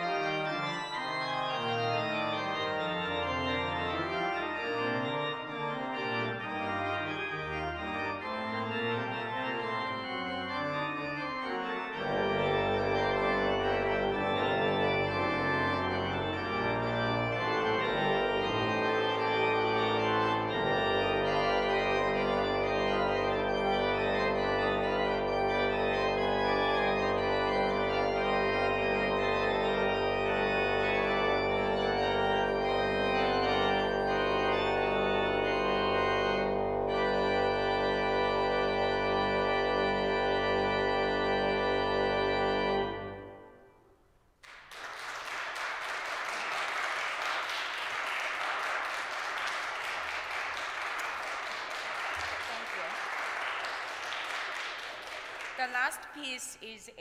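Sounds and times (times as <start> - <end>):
church organ playing: 0.0 - 44.0, 45.0 - 55.6.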